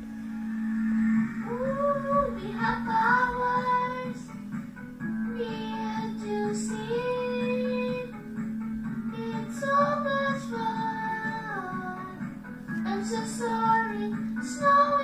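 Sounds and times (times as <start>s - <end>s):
steady musical accompaniment: 0.0s - 15.0s.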